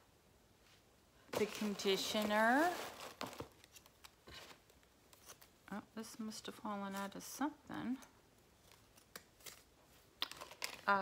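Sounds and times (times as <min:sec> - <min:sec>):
packaging crinkling: 0:01.3 - 0:05.6, 0:08.6 - 0:11.0.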